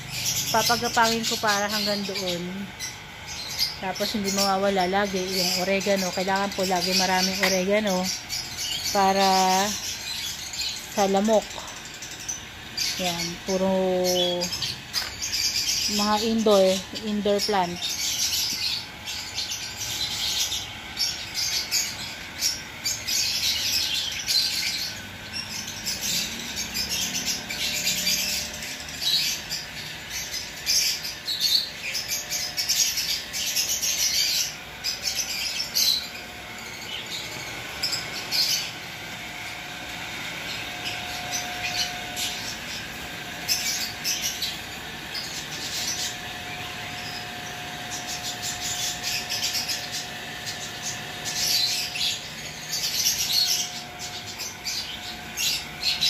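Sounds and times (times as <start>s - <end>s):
small birds chirping: 0.0s - 56.0s.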